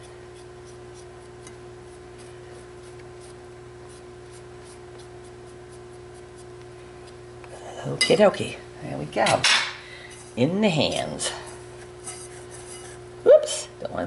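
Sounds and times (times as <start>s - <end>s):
steady low hum: 0.0s - 14.0s
dough scraped off spatula: 11.9s - 13.0s.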